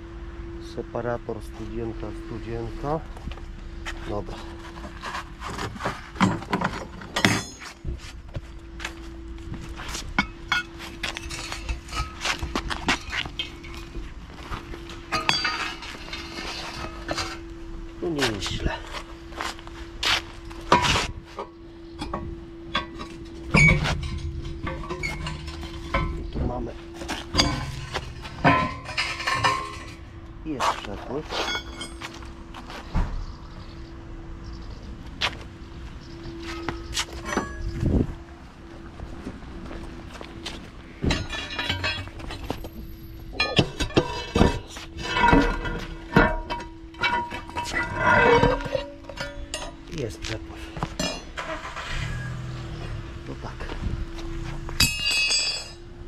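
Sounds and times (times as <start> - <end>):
steady hum: 0.0 - 56.0.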